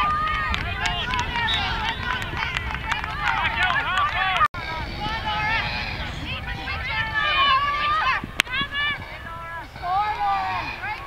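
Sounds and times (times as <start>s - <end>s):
crowd shouting and calling: 0.0s - 11.0s.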